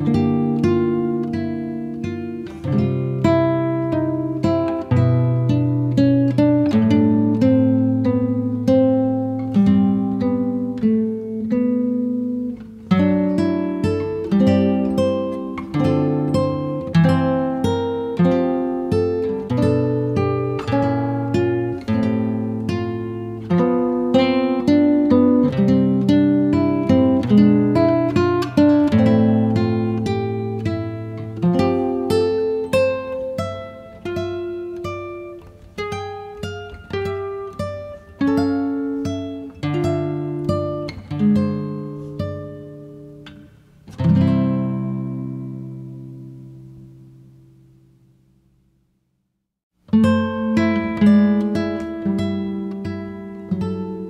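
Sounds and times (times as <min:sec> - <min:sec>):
acoustic guitar music: 0:00.0 - 0:48.9, 0:49.7 - 0:54.0.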